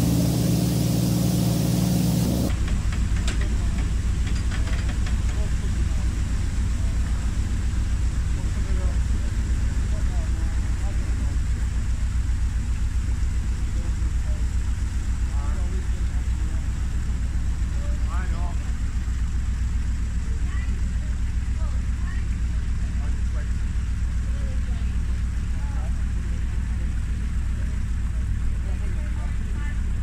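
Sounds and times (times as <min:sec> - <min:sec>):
diesel engine idling: 0:00.0 - 0:30.0.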